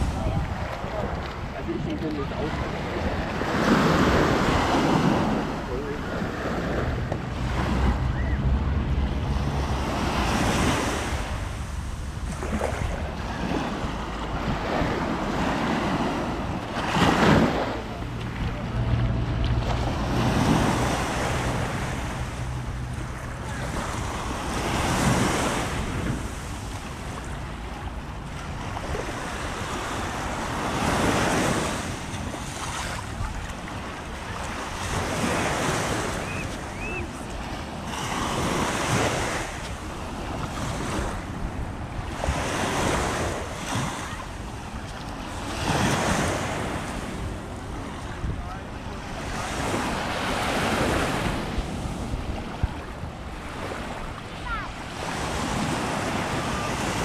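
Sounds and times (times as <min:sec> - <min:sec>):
waves breaking on beach: 0:00.0 - 0:57.0
wind rumbling on microphone: 0:00.0 - 0:57.0.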